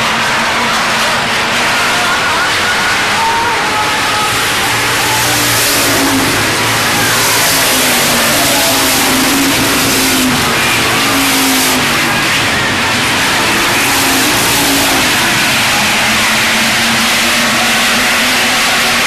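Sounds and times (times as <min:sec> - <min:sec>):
race car engines revving: 0:00.0 - 0:19.0.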